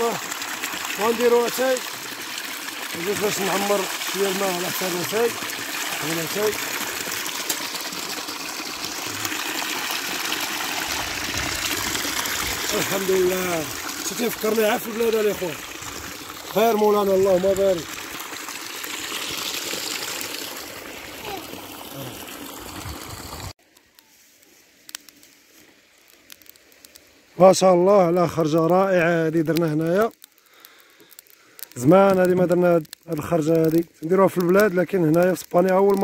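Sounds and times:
water pouring into stone trough: 0.0 - 23.6.

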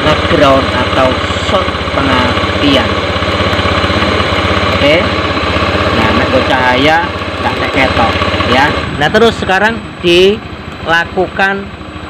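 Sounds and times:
scooter engine idling: 0.0 - 12.0.

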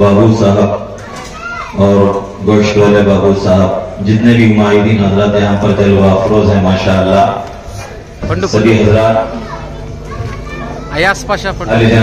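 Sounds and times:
man speaking into a microphone: 0.0 - 1.0, 1.8 - 7.6, 8.2 - 9.5, 10.9 - 12.0
background chatter: 0.0 - 12.0
children's voices: 1.0 - 2.0, 9.0 - 11.4.

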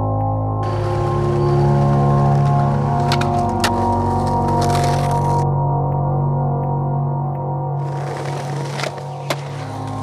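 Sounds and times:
background music: 0.0 - 10.0
skateboard wheels rolling on bricks: 0.6 - 5.4, 7.8 - 10.0
sharp skateboard clacks: 7.8 - 10.0.

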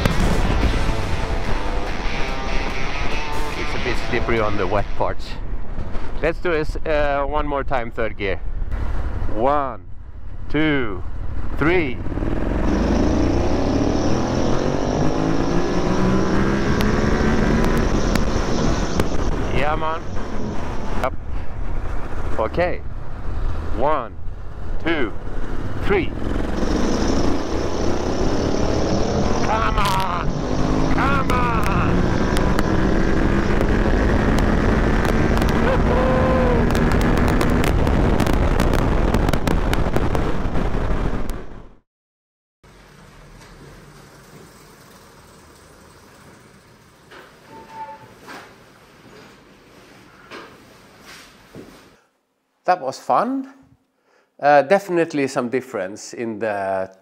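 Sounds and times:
heavy wind rush: 14.2 - 41.8
motorcycle engine running: 25.3 - 37.7.

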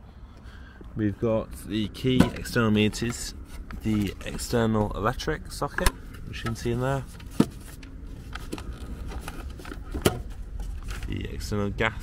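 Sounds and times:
camera handling rumble: 5.8 - 11.2.

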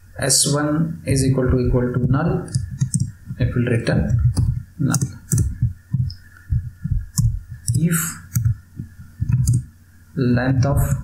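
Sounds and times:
keyboard keystroke clicks: 2.5 - 3.1, 4.1 - 6.2, 9.2 - 9.7.

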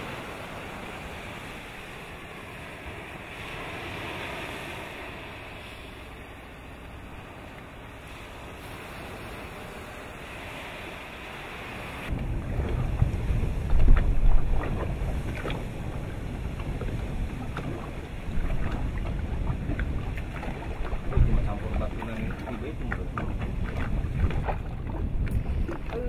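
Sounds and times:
wind and sea hiss: 0.0 - 26.0
wind buffeting microphone: 0.0 - 26.0
volcanic eruption rumble and cracks: 12.0 - 26.0.

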